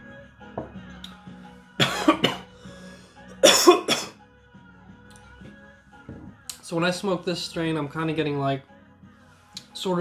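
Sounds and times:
quiet background music: 0:00.0 - 0:10.0
man coughing: 0:01.8 - 0:02.5, 0:03.4 - 0:04.2.

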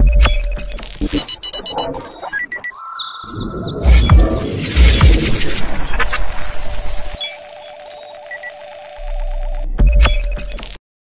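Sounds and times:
electronic tone with pulsing flutter: 0:01.0 - 0:09.6
high computer beeps: 0:01.0 - 0:09.6.

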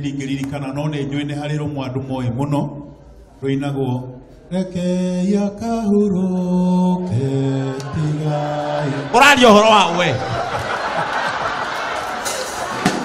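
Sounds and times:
man chanting into microphone: 0:03.4 - 0:10.3.

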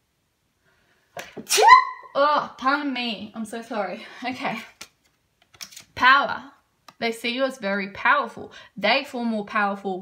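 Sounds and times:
person sneezing: 0:01.4 - 0:02.0.

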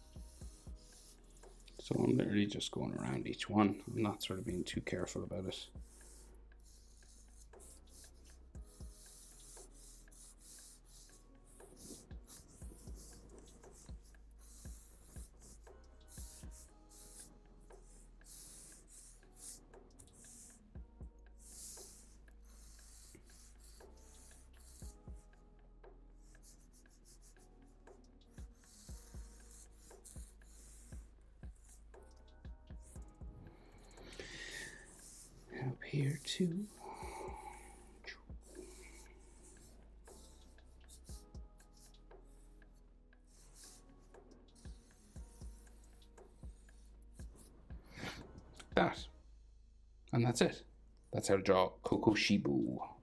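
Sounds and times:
marker pen scratching on paper: 0:00.0 - 0:20.7, 0:21.3 - 0:49.0.

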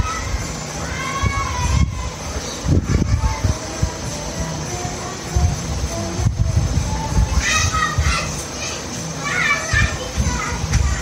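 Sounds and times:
children's high-pitched voices: 0:00.0 - 0:11.0
low background rumble: 0:00.0 - 0:11.0.

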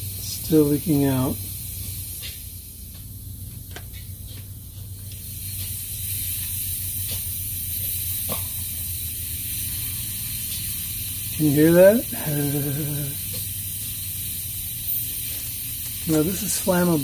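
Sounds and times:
aerosol can hissing: 0:00.0 - 0:04.2, 0:05.0 - 0:17.0.

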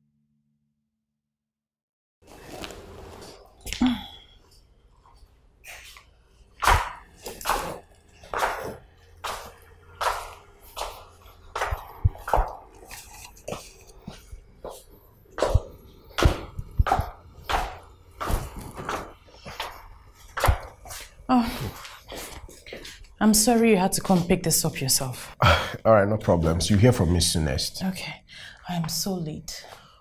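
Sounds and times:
footsteps on tiled floor: 0:05.0 - 0:25.1.

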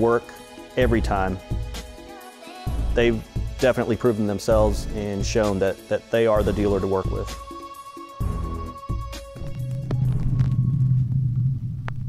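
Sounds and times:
deep electronic rumble: 0:08.2 - 0:12.0.

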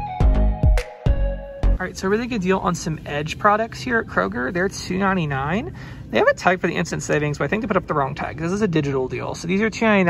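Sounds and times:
voice: 0:01.8 - 0:10.0.

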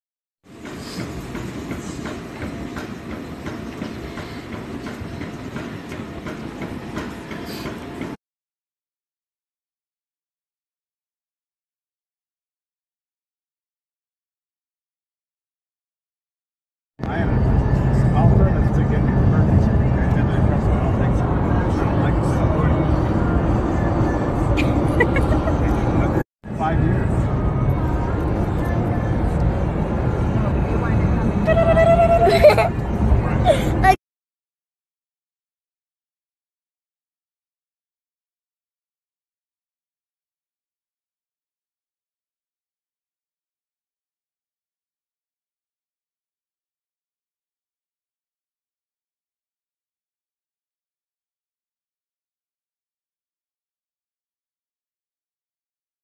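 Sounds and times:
low machine rumble: 0:17.0 - 0:33.9.

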